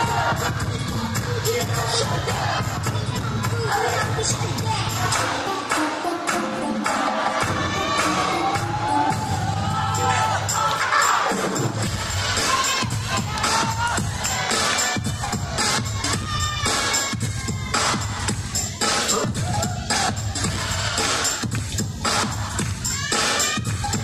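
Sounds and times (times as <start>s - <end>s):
crowd cheering and shouting: 0.0s - 24.0s
hip hop dance music: 0.0s - 24.0s.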